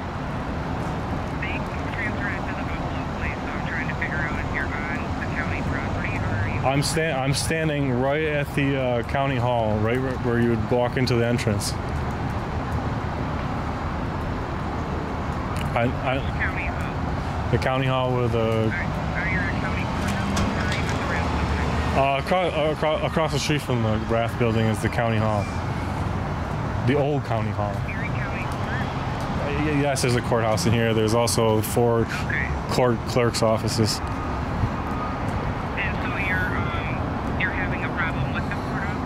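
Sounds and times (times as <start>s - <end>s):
city traffic rumble: 0.0s - 39.0s.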